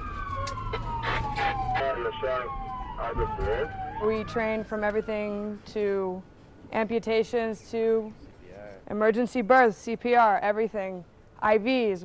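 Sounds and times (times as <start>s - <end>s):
ambulance siren wailing: 0.0s - 5.8s
low vehicle rumble: 0.0s - 6.0s.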